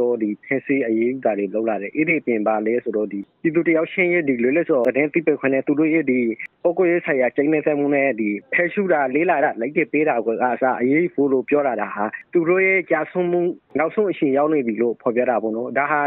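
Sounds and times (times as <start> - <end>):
man narrating: 0.0 - 16.0.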